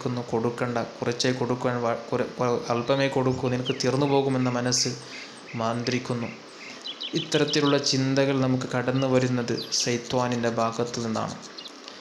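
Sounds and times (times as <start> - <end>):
man preaching: 0.0 - 11.4
faint high chirps: 2.7 - 8.0.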